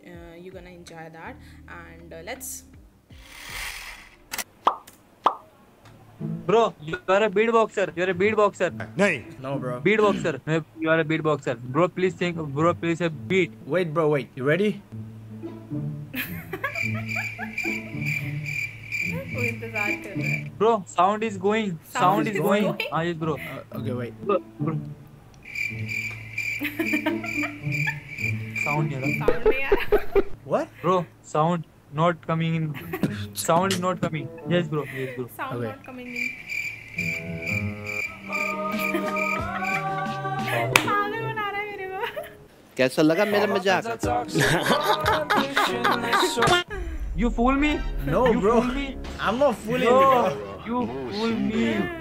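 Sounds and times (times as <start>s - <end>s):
cartoon-like pop: 4.6s - 5.4s
crickets chirping: 16.2s - 23.7s, 25.1s - 30.4s, 34.8s - 40.7s
soft whoosh: 46.7s - 49.6s
low hum: 46.7s - 50.8s.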